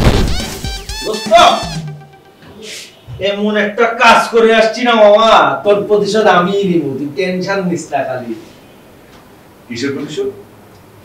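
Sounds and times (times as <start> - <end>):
background music: 0.0 - 2.8.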